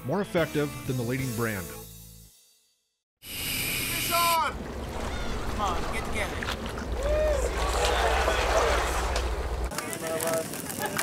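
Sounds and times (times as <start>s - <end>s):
low rumble: 4.6s - 9.7s
men laughing: 6.9s - 9.4s, 10.5s - 11.0s
men shouting: 6.9s - 9.4s.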